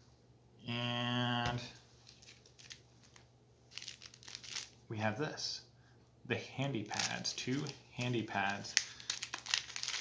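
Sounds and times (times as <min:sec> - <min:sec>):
paper envelope rustling: 0:02.0 - 0:04.8, 0:06.9 - 0:10.0.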